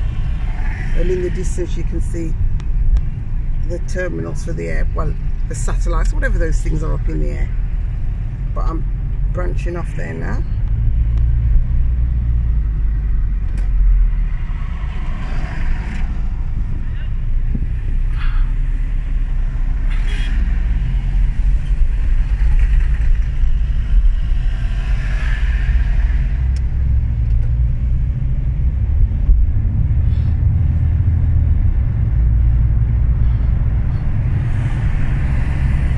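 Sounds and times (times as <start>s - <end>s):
car engine rumble: 0.0s - 35.9s
tyre road noise: 0.0s - 35.9s.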